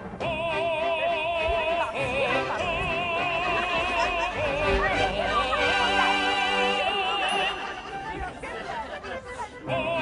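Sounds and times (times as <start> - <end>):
music with operatic vocal: 0.0 - 8.4, 9.2 - 10.0
people talking indistinctly: 0.3 - 10.0.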